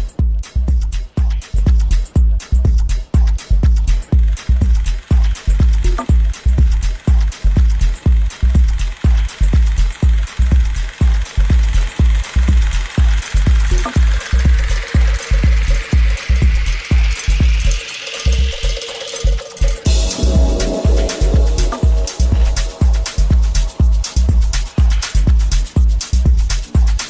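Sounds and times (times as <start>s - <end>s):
pounding kick drum: 0.0s - 17.8s, 19.9s - 27.0s
techno music: 0.0s - 27.0s
hissing noise riser: 19.9s - 25.4s.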